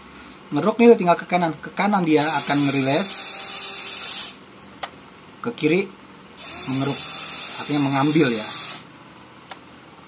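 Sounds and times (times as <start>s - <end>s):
small electric motor running: 2.2s - 4.4s, 6.4s - 8.9s.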